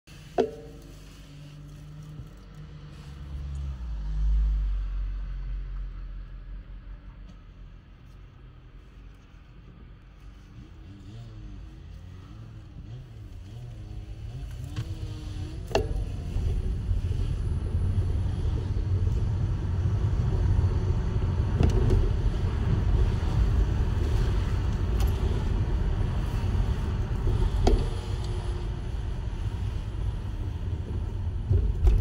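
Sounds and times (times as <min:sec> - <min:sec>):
vehicle driving on road: 0:00.1 - 0:32.0.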